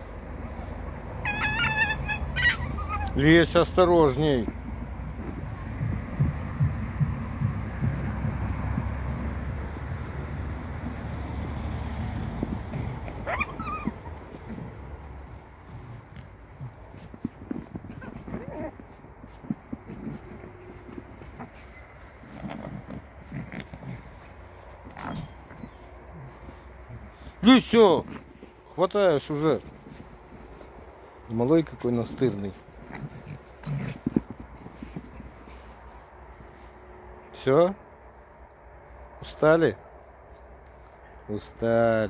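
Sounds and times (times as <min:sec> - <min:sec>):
foxes low rough vocalizing: 0:00.2 - 0:36.7
fox high squeal: 0:01.2 - 0:03.2, 0:13.1 - 0:14.2
fox short calls: 0:01.2 - 0:03.2, 0:12.9 - 0:14.8
scuffling: 0:12.0 - 0:36.8.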